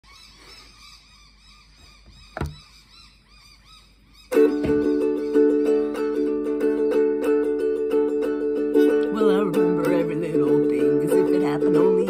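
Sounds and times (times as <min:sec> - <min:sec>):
faint bird calls: 0:00.0 - 0:05.5
sharp thump: 0:02.0 - 0:02.7.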